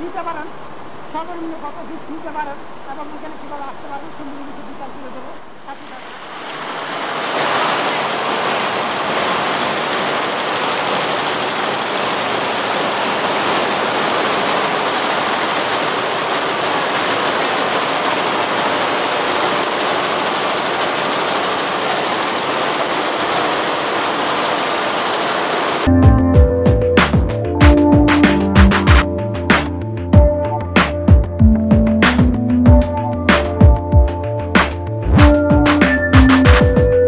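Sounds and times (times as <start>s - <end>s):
embroidery machine clatter: 6.7s - 25.9s.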